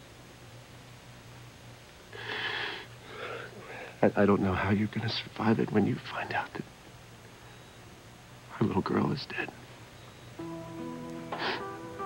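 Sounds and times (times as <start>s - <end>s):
person breathing unsteadily: 2.2s - 4.0s, 11.3s - 11.8s.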